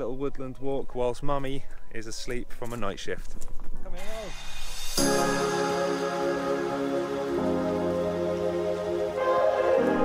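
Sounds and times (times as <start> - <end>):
soft synth chords: 5.0 - 10.0.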